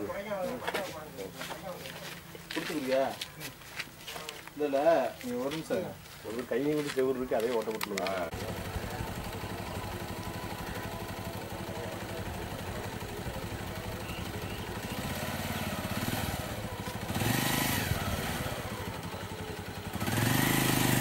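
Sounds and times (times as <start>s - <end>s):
motorcycle engine idling: 5.9s - 21.0s.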